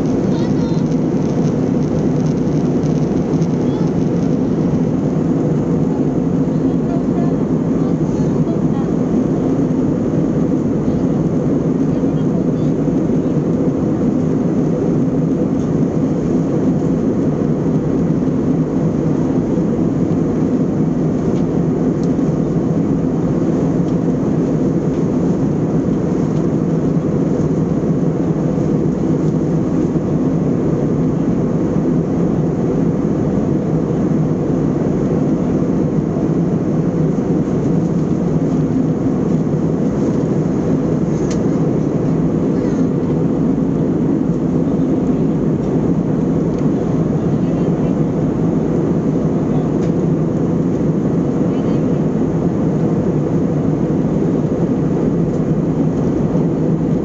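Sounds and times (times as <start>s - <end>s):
airliner cabin noise: 0.0s - 57.0s.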